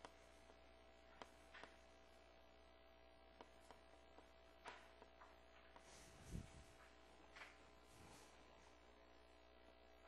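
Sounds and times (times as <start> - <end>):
faint low hum: 0.0 - 10.0
faint ticks: 3.3 - 5.9.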